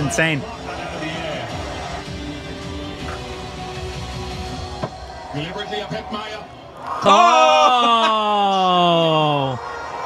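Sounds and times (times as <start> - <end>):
commentator speaking: 0.0 - 1.6
background music: 0.0 - 10.0.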